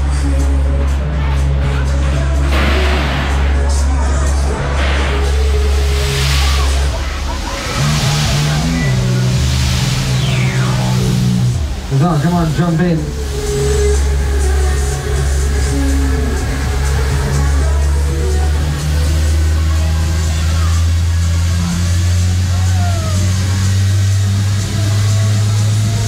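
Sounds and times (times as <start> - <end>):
loud funfair music: 0.0 - 26.0
low drone of running ride: 0.0 - 26.0.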